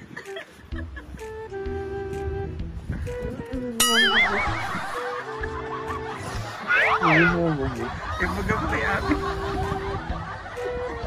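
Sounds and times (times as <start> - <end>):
background music with held notes: 0.0 - 11.0
high wavering laugh: 3.8 - 11.0.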